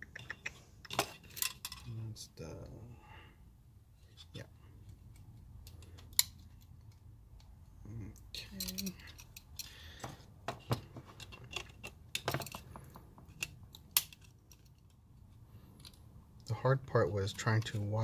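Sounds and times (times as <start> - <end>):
metal terminals clicking and rattling: 0.0 - 2.0, 8.2 - 16.5.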